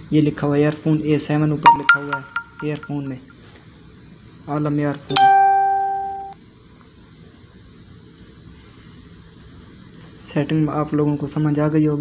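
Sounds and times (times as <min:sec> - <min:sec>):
electronic beep: 0:01.7 - 0:03.2.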